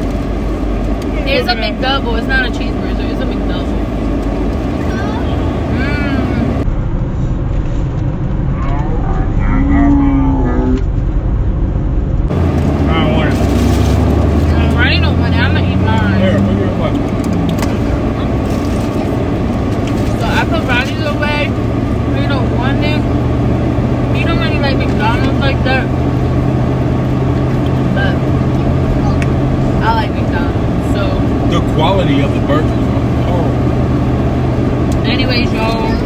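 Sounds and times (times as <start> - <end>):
car engine hum inside cabin: 0.0 - 36.0.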